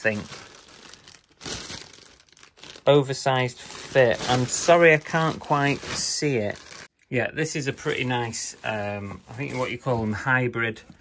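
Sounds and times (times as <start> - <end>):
plastic bag crinkling: 0.0 - 6.9, 7.6 - 10.2.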